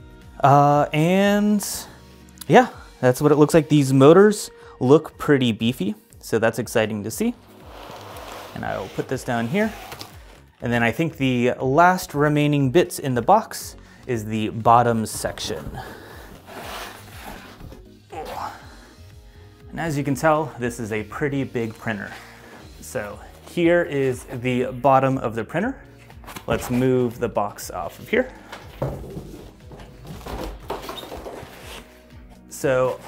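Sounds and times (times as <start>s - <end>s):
background music: 0.0s - 33.0s
foam scraping against cardboard: 7.4s - 10.4s, 16.4s - 17.7s.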